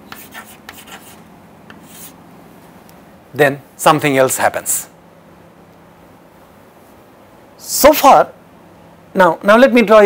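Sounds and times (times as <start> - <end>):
chalk writing on chalkboard: 0.0 - 2.2.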